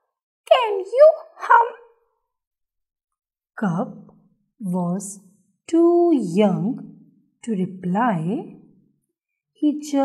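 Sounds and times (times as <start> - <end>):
woman speaking in character voice: 0.4 - 2.0, 3.6 - 4.0, 4.6 - 8.6, 9.6 - 10.0.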